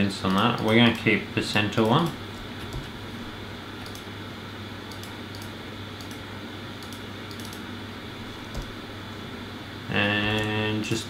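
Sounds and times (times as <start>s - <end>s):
steady low hum: 0.0s - 11.0s
keyboard and mouse clicks: 2.6s - 3.0s, 3.8s - 4.1s, 4.9s - 6.2s, 6.8s - 7.7s, 8.5s - 8.8s.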